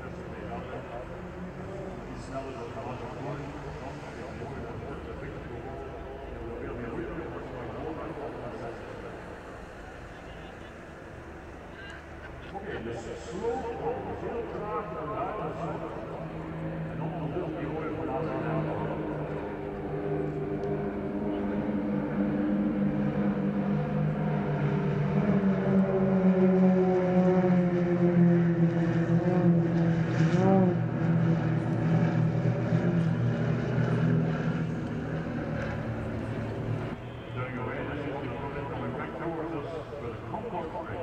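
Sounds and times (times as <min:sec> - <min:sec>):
propeller aircraft droning overhead: 0:00.0 - 0:41.0.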